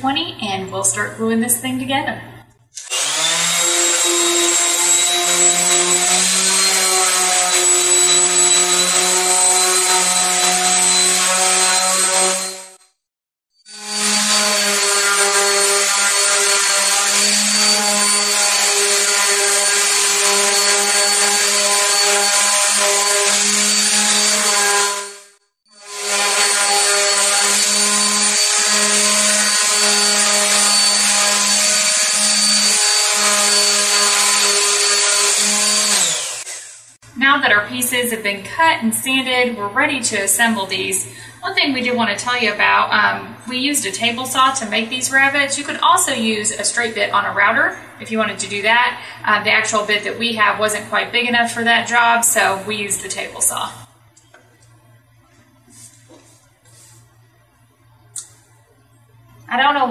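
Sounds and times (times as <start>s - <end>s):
orbital sander on wood: 2.8s - 12.8s, 13.7s - 37.0s.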